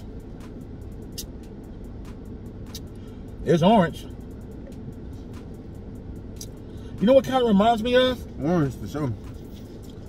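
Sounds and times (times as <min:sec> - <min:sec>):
low rumble inside a car: 0:00.0 - 0:10.0.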